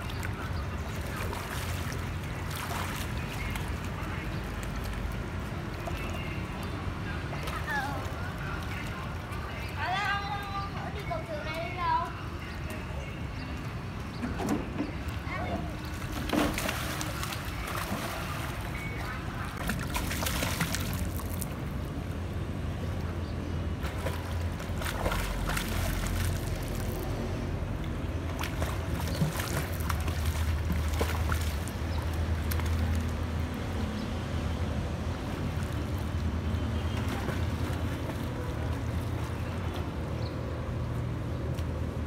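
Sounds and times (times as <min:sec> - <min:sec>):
water splashing in pool: 0:00.0 - 0:09.7, 0:15.1 - 0:21.8, 0:23.7 - 0:39.6.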